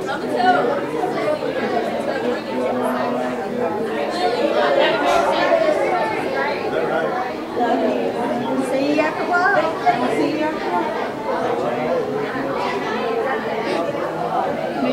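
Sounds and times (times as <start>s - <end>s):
crowd chatter in a hall: 0.0s - 14.9s.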